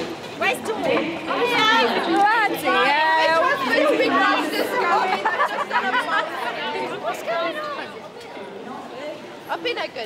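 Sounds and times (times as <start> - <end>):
women chattering: 0.4 - 10.0.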